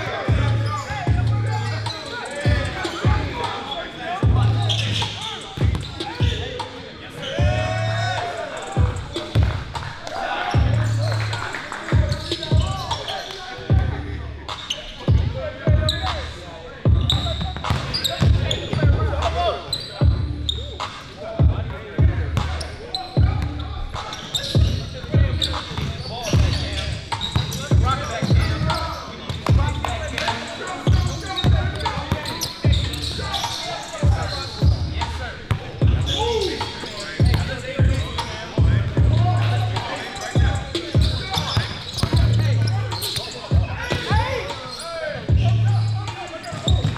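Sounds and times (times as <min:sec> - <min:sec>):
voices: 0:00.0 - 0:46.9
basketball bouncing on gym floor: 0:05.6 - 0:05.9, 0:40.4 - 0:42.4, 0:46.5 - 0:46.9.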